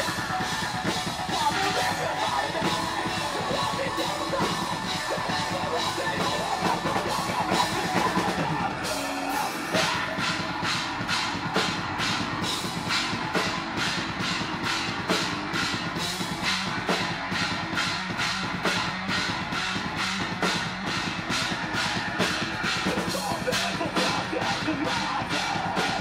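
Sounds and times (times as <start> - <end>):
metal band playing: 0.0 - 26.0.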